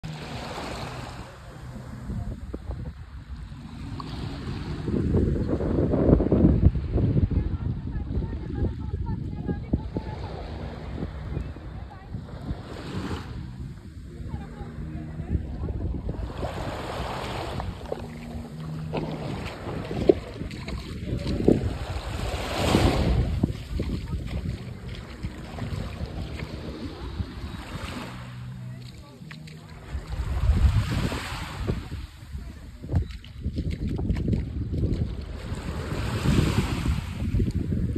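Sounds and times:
small waves lapping on shore: 0:00.0 - 0:37.9
wind buffeting microphone: 0:00.4 - 0:37.9.

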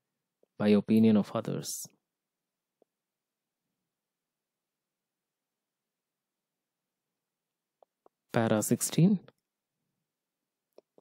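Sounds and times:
man speaking: 0:00.6 - 0:02.0, 0:08.3 - 0:09.4.

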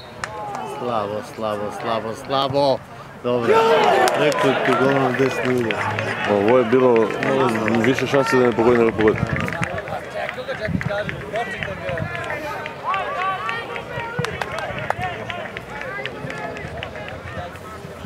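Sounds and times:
men shouting and cheering: 0:00.2 - 0:02.5, 0:03.3 - 0:17.6.

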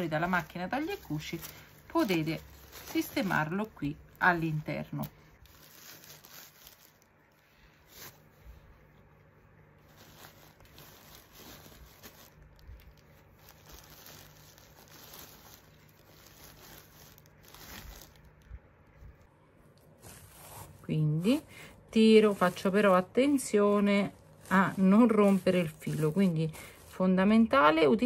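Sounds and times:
rustling of wadding pulled apart: 0:09.8 - 0:19.3.

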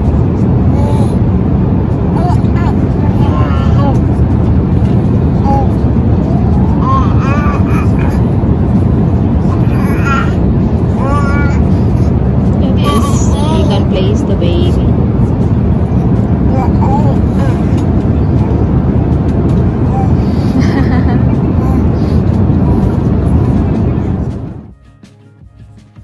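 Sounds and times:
airliner cabin roar: 0:00.0 - 0:24.8
baby babbling: 0:00.6 - 0:01.2, 0:02.2 - 0:04.1, 0:05.4 - 0:05.8, 0:06.4 - 0:08.3, 0:09.4 - 0:12.0, 0:12.8 - 0:13.9, 0:16.5 - 0:17.8, 0:19.9 - 0:20.3, 0:21.5 - 0:22.0.

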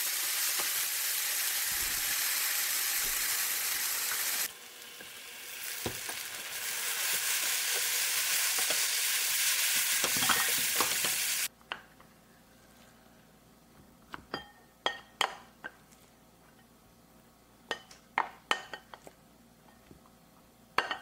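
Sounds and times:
food sizzling in a frying pan: 0:00.0 - 0:11.5.

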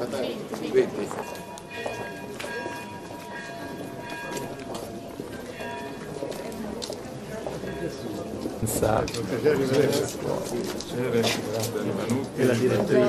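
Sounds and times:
footsteps on cobblestones: 0:00.0 - 0:13.0
murmured voices: 0:00.0 - 0:13.0.

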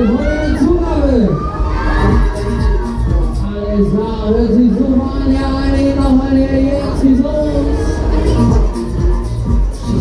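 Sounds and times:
high shouts: 0:00.0 - 0:04.2
riders screaming and cheering: 0:00.0 - 0:08.7.

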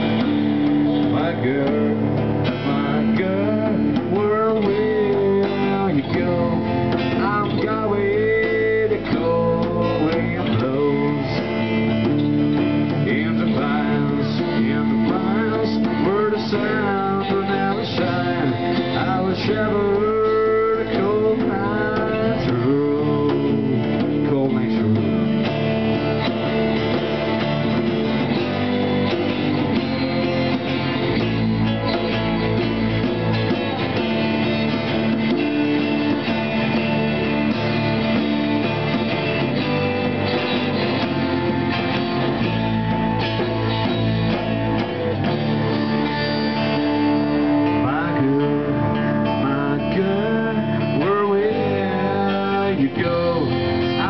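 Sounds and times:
lead guitar bending notes: 0:00.0 - 0:54.0
live rock band playing: 0:00.0 - 0:54.0.

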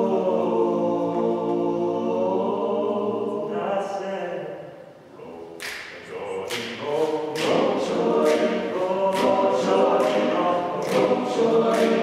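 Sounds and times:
men singing in close harmony: 0:06.4 - 0:12.0.

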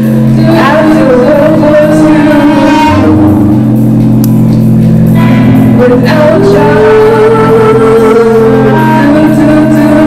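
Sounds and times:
alto saxophone long notes: 0:00.0 - 0:04.4
steady low drone: 0:00.0 - 0:10.0.

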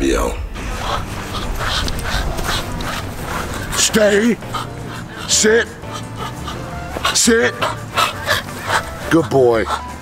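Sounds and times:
man panting and whimpering: 0:00.7 - 0:10.0.

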